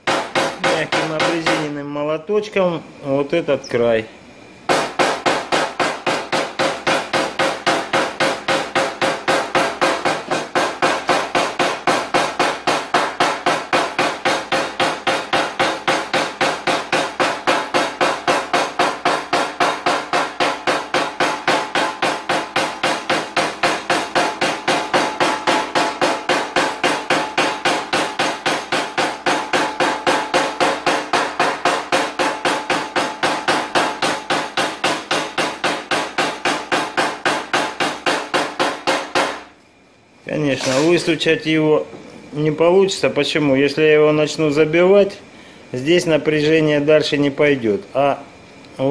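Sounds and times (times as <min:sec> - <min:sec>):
hammer tapping car fender: 0:00.0 - 0:01.7, 0:04.7 - 0:39.5.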